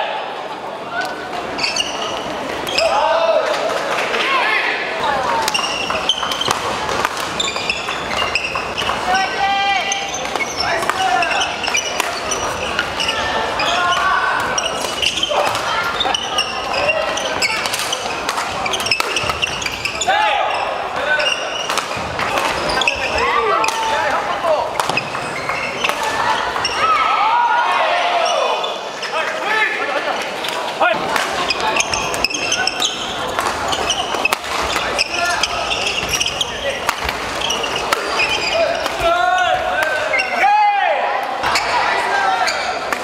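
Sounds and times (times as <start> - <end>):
voices in a hall: 0.0 - 43.0
sneakers squeaking on wooden floor: 1.5 - 3.0, 5.3 - 27.0, 30.4 - 40.5, 41.4 - 42.9
racket hitting shuttlecock: 5.4 - 9.0, 24.7 - 25.2, 33.3 - 35.0, 36.0 - 39.1.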